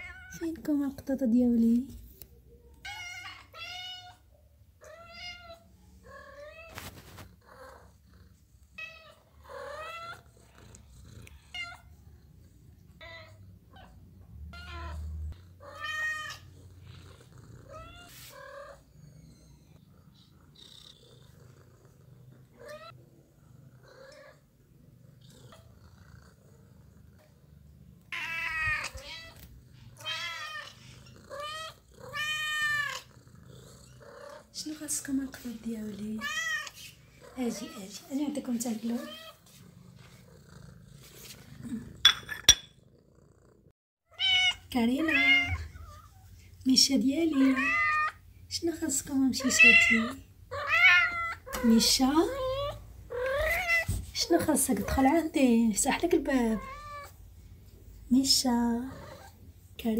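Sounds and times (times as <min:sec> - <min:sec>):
cats meowing: 0:00.0 - 0:00.4, 0:02.7 - 0:07.8, 0:08.8 - 0:10.3, 0:13.0 - 0:16.6, 0:22.6 - 0:23.0, 0:28.1 - 0:33.1, 0:36.0 - 0:38.0, 0:44.1 - 0:46.3, 0:47.4 - 0:48.2, 0:49.4 - 0:54.1, 0:56.3 - 0:57.2.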